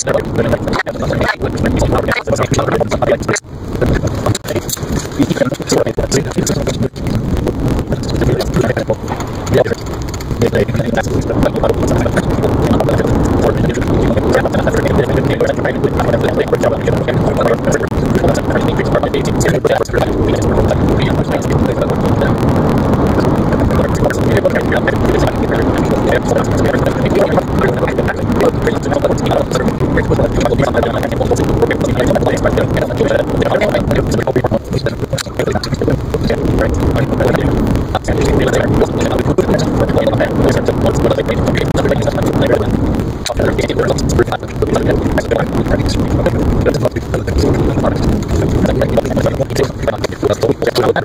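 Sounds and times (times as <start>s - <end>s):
car road and engine noise: 3.4s - 5.3s, 6.2s - 19.4s, 20.1s - 51.0s.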